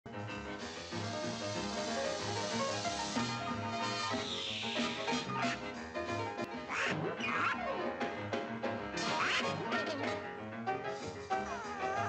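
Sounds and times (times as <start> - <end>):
cartoon music: 3.2 - 7.8, 9.0 - 10.2, 11.3 - 12.0
quacking cartoon duck voice: 6.7 - 7.7, 9.0 - 10.1.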